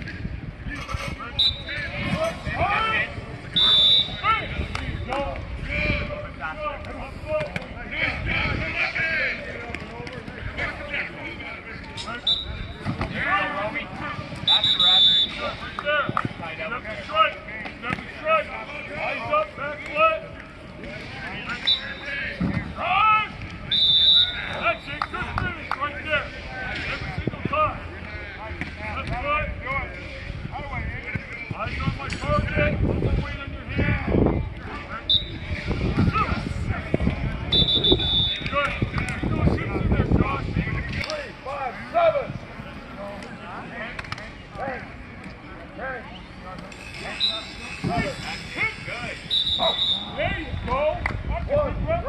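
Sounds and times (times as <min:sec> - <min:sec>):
whistle blasts: 0:01.4 - 0:01.8, 0:03.5 - 0:04.5, 0:12.2 - 0:12.8, 0:14.4 - 0:15.6, 0:21.5 - 0:22.2, 0:23.7 - 0:25.1, 0:35.0 - 0:35.5, 0:37.5 - 0:38.7, 0:46.1 - 0:50.2
voices shouting: 0:46.8 - 0:50.4.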